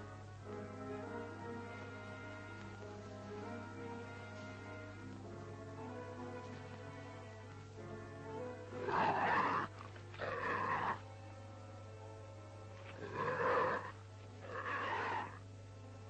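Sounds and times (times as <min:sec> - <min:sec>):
faint background music: 0:00.0 - 0:16.0
film soundtrack hum: 0:00.0 - 0:16.0.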